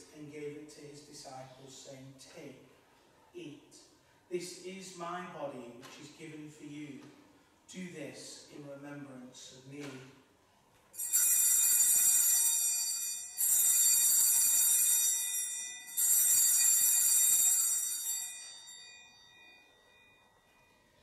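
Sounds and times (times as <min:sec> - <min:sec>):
altar bell ringing: 0:11.0 - 0:21.0.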